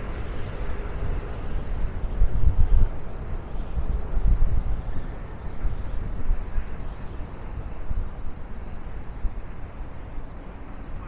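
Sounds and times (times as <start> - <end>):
traffic noise from passing cars: 0.0 - 11.0
wind rumble on microphone: 0.0 - 11.0.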